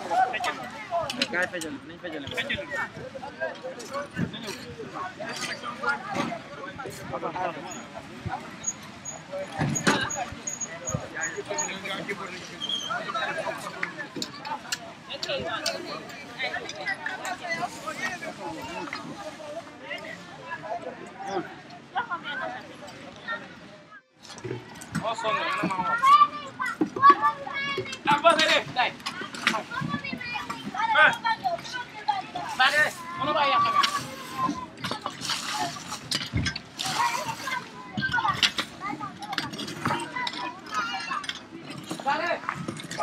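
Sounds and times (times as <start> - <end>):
children calling and chattering: 0.0 - 43.0
people talking outdoors: 0.0 - 43.0.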